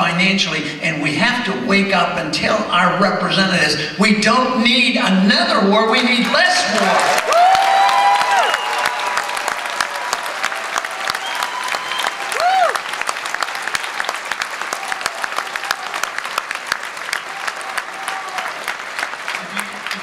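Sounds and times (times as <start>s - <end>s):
man speaking: 0.0s - 7.1s
audience applauding: 6.0s - 20.0s
cheers and whoops: 6.8s - 16.3s, 17.1s - 18.8s.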